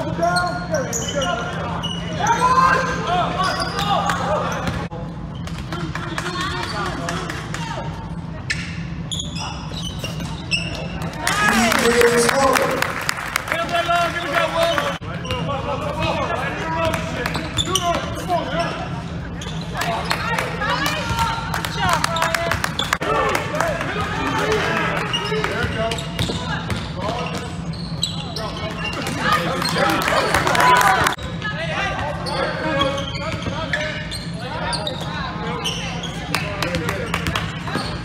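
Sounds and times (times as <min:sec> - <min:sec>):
sneakers squeaking on gym floor: 0:00.0 - 0:07.1, 0:08.0 - 0:11.1, 0:17.3 - 0:23.0, 0:25.0 - 0:30.0, 0:31.2 - 0:38.0.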